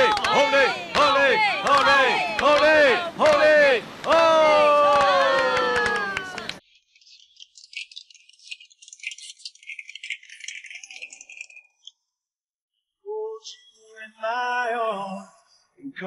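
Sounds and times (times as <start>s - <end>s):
crowd cheering: 0.0s - 6.6s.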